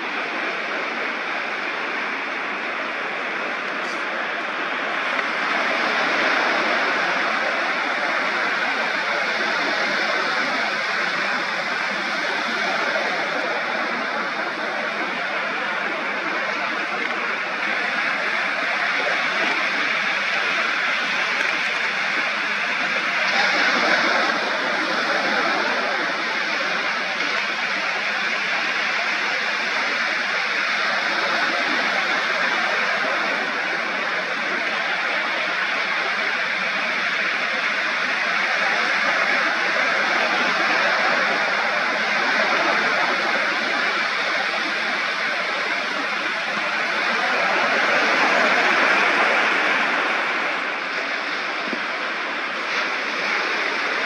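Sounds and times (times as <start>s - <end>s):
ocean surf washing onto beach: 0.0s - 54.0s.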